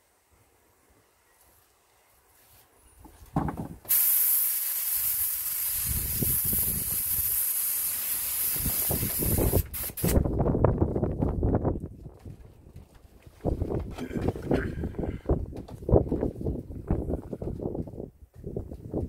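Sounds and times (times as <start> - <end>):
airbrush spraying hiss: 3.9 - 10.2.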